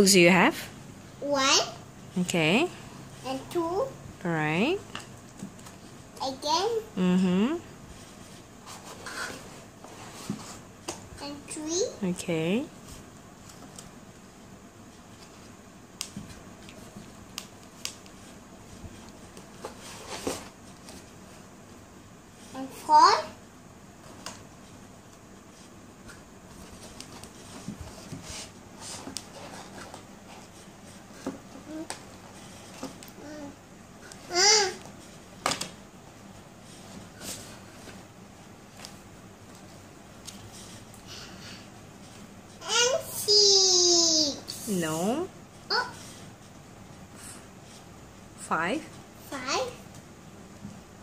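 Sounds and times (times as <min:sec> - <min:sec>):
books rubbing and rustling: 0:07.8 - 0:11.0, 0:14.8 - 0:21.7, 0:24.0 - 0:35.4, 0:36.0 - 0:43.0.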